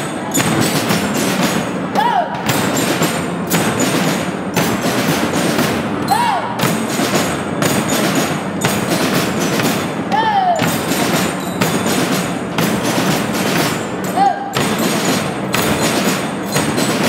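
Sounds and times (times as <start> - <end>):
bell lyres ringing: 0.0 - 1.4, 2.6 - 17.0
bass drums beating: 0.0 - 17.0
snare drums beating: 0.0 - 17.0.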